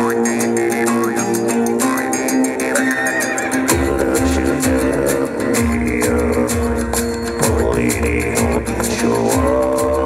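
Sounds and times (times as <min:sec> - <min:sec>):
deep drone: 0:00.0 - 0:10.0
heavy low drum beats: 0:03.6 - 0:10.0.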